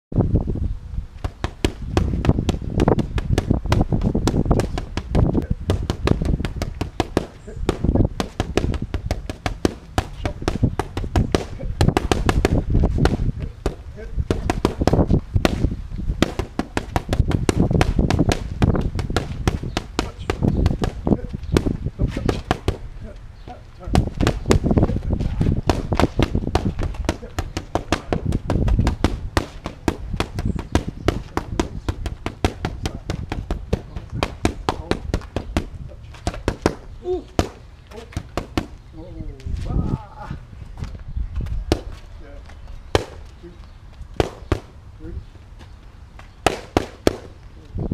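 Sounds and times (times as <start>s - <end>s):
boxing gloves slapping mitts: 1.2s - 22.9s, 23.8s - 38.8s, 40.8s - 42.0s, 42.9s - 43.4s, 44.1s - 44.7s, 46.2s - 47.4s.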